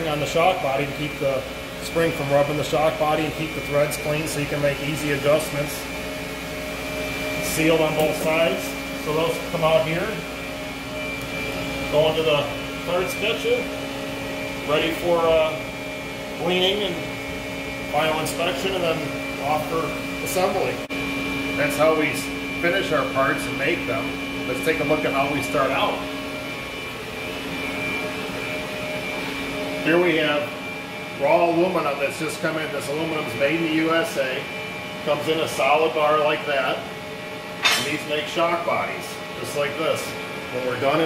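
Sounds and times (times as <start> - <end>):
faint high whine: 0.0 - 17.2
machinery humming with high whine: 0.0 - 41.0.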